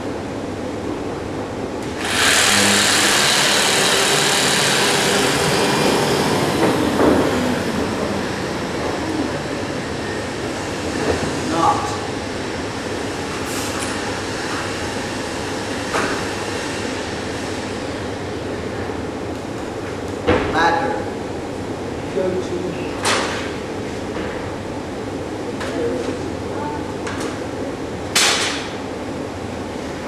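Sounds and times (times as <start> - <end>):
workshop background noise: 0.8 - 28.9
electric jigsaw cutting wood: 1.8 - 7.5.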